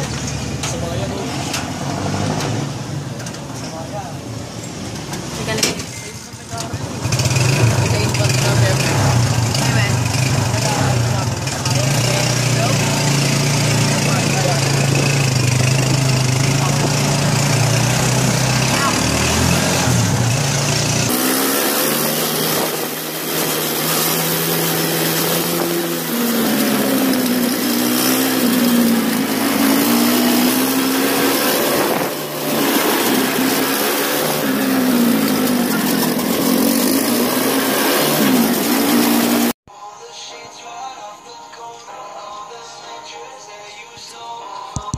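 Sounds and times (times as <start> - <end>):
vehicle engine revving: 0.0 - 5.8, 6.5 - 39.6.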